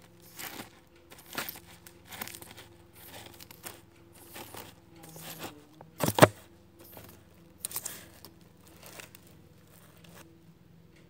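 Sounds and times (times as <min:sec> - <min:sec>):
faint steady hum: 0:00.0 - 0:11.0
hairbrush rustling through hair: 0:00.2 - 0:10.2.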